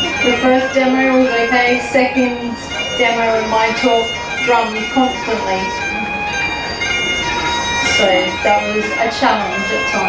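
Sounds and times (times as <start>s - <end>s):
reedy wind instrument drone: 0.0s - 10.0s.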